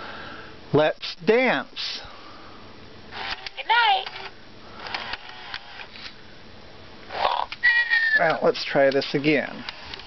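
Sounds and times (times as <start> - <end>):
toy parrot squawk: 7.1 - 8.4
steady high whistle: 7.6 - 8.4.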